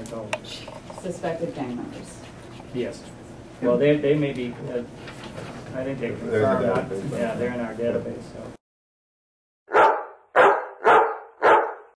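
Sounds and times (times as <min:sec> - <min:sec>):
dog barking: 0:09.7 - 0:12.0.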